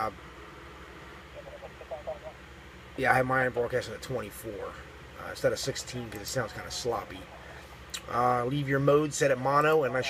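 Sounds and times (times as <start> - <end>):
steady low hum: 0.0 - 10.0
faint voice speaking: 1.4 - 2.4.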